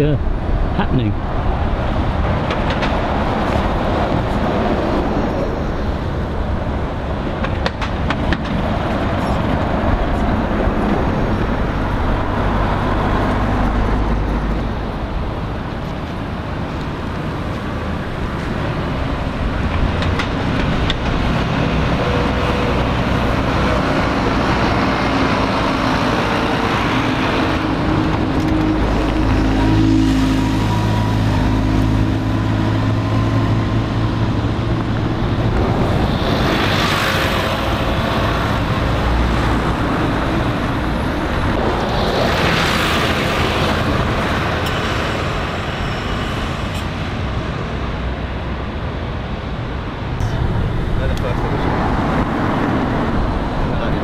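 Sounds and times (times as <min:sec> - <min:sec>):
large vehicle engine humming: 0:00.0 - 0:54.0
vehicles passing: 0:00.0 - 0:54.0.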